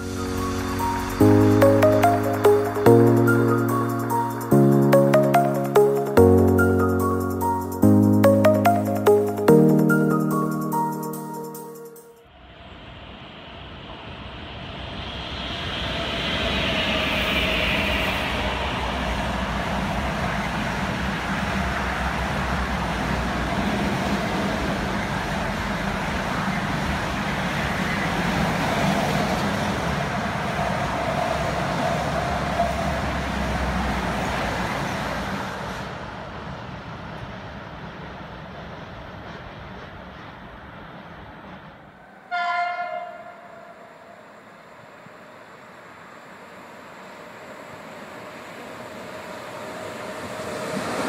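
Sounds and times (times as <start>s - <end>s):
freight train rumbling past: 0.0s - 9.1s, 12.6s - 51.0s.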